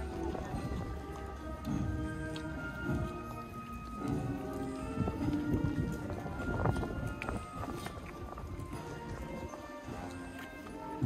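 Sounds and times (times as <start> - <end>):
footsteps on stone: 0.0 - 11.0
music with held tones: 0.0 - 11.0.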